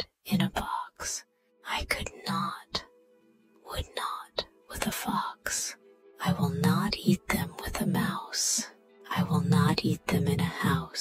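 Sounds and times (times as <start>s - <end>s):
person whispering and speaking softly: 0.0s - 3.0s, 3.6s - 11.0s
quiet background music: 0.0s - 11.0s.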